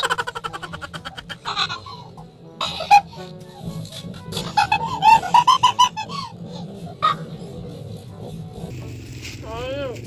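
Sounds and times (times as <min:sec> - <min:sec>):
person laughing hard: 0:00.0 - 0:03.3, 0:03.9 - 0:06.7
background music: 0:00.0 - 0:10.0.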